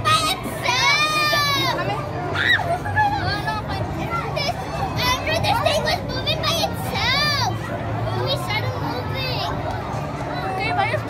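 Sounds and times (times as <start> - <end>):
children shouting and squealing: 0.0 - 9.6
general hubbub: 0.0 - 11.0.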